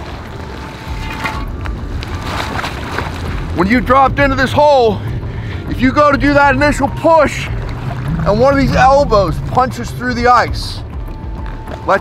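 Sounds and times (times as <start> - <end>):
wind rumble on microphone: 7.5 - 11.5.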